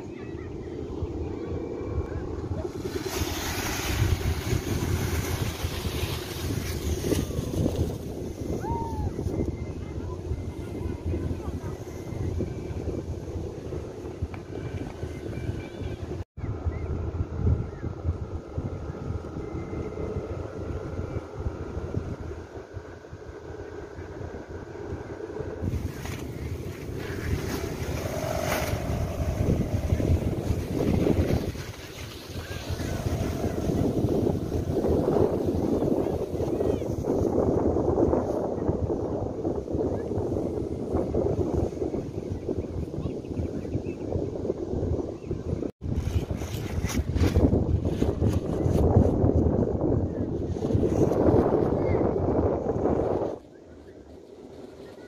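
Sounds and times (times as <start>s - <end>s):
wind rumbling on microphone: 0.0s - 55.0s.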